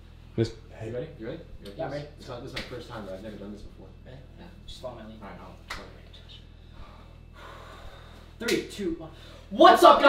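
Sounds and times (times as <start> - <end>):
low steady hum: 0.0 - 10.0
person breathing: 6.5 - 8.4, 9.1 - 9.5.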